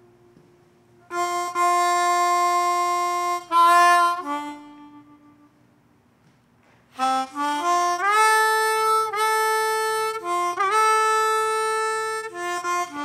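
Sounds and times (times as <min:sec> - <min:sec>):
harmonica playing slow blues: 0:01.0 - 0:05.8, 0:06.9 - 0:13.0.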